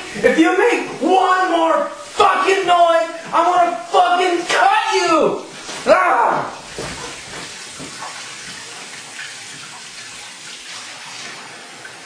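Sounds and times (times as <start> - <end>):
dishes being washed: 0.0 - 12.0
faucet running into sink: 6.5 - 12.0.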